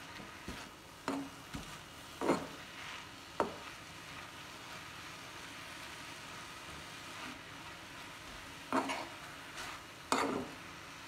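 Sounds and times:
spatula scraping a pan: 0.0s - 5.9s, 6.6s - 11.0s
greens sizzling in a pan: 0.0s - 11.0s.

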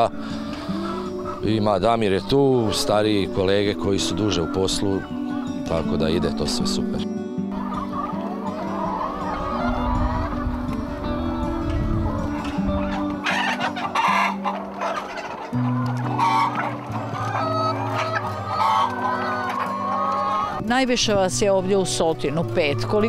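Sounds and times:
hens clucking: 0.0s - 20.6s
music of sustained low notes: 0.0s - 23.0s.

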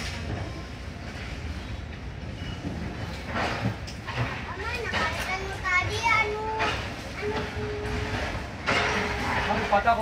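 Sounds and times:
train running rumble: 0.0s - 10.0s.

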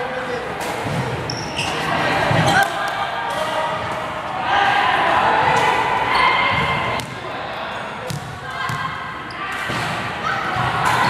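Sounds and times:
indistinct echoing voices: 0.0s - 11.0s.

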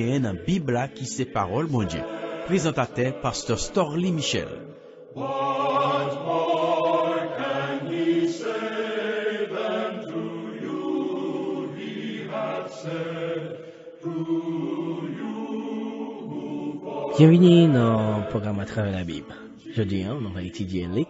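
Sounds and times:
choir singing long held notes: 0.9s - 21.0s.

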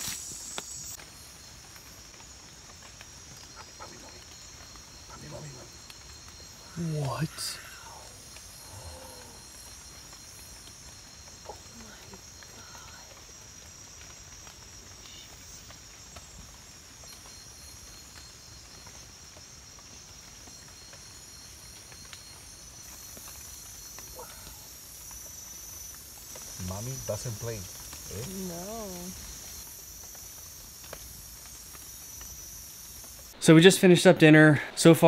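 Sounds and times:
insect chorus drone: 0.0s - 35.0s.

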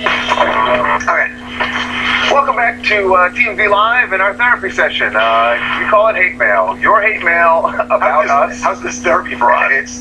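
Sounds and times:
steady low hum: 0.0s - 10.0s
man speaking: 0.1s - 10.0s.

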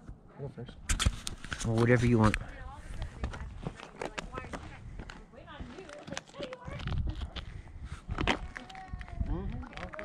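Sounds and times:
faint voices: 1.7s - 10.0s.

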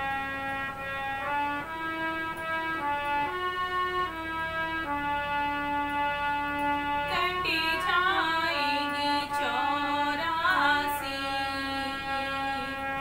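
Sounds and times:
harmonium melody: 0.0s - 13.0s
woman singing: 7.1s - 13.0s.

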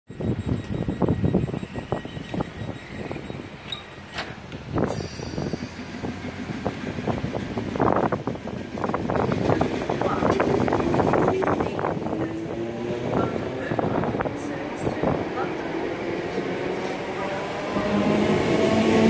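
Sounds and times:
train wheels clicking on track: 0.5s - 12.9s.

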